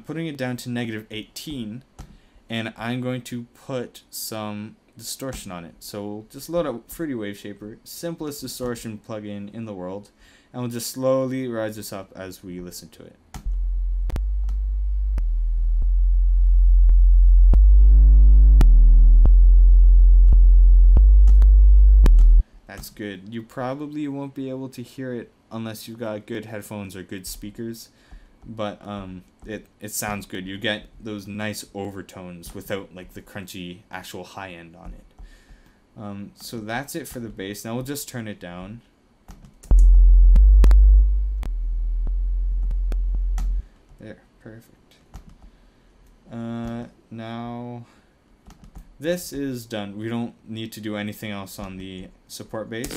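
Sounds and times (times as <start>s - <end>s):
distorted sub-bass synth tone: 13.4s - 22.4s, 39.7s - 43.6s.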